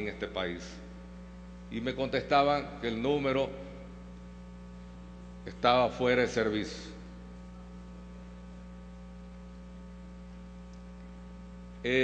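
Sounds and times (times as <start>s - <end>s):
man speaking: 0.0s - 0.9s, 1.7s - 3.9s, 5.5s - 7.1s
electrical mains hum: 0.0s - 12.0s.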